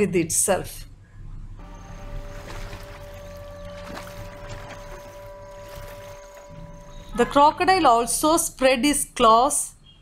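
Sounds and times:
steady hum of held tones: 0:00.9 - 0:08.6.

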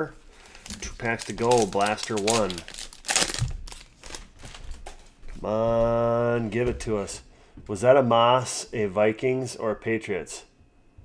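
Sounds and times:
foil wrapper crinkling: 0:00.2 - 0:05.2.

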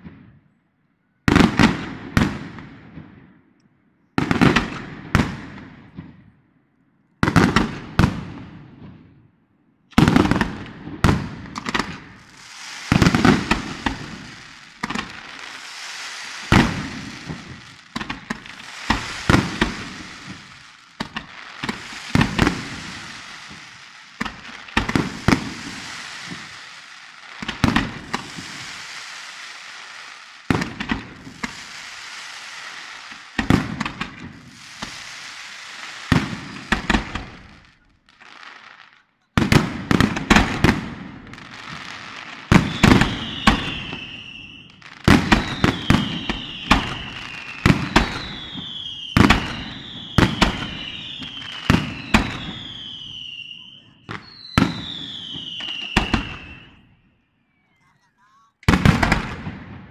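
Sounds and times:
fireworks crackling: 0:10.0 - 0:56.9, 0:57.7 - 0:59.9
falling firework whistle: 0:11.8 - 0:38.2, 0:41.5 - 0:58.0
firework shell bursts: 0:12.1 - 0:37.3.

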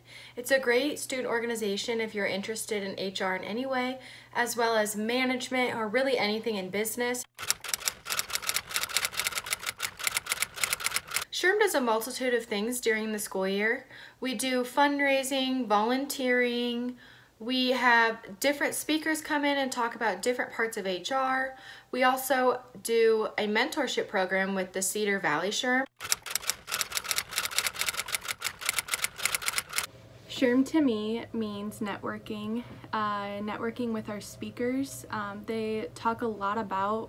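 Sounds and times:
typewriter key clicks: 0:07.4 - 0:11.2, 0:26.0 - 0:29.9.

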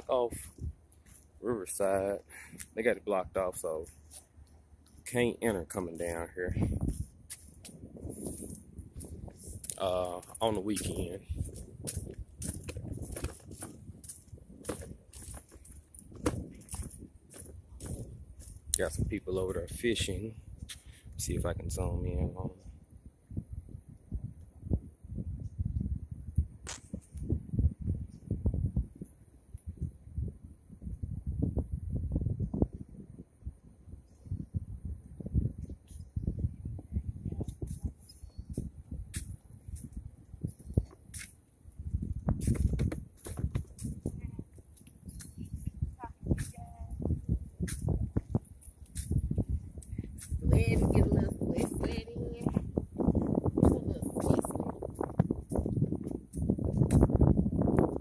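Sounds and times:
wind buffeting microphone: 0:00.0 - 0:04.1, 0:05.0 - 0:58.0.

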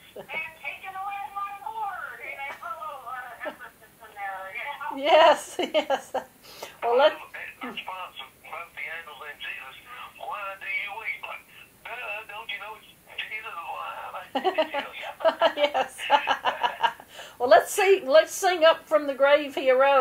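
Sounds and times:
people talking over a phone line: 0:00.3 - 0:05.5, 0:06.8 - 0:16.8.

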